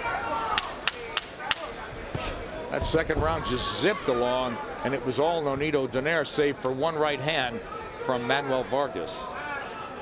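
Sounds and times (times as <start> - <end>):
arena noise: 0.0 - 10.0.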